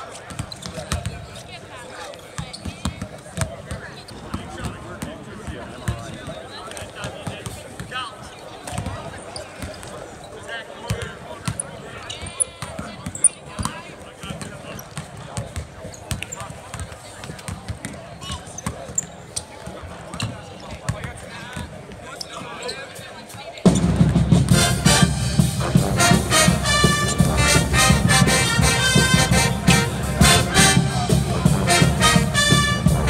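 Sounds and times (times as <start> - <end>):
voices talking: 17.7 - 33.0.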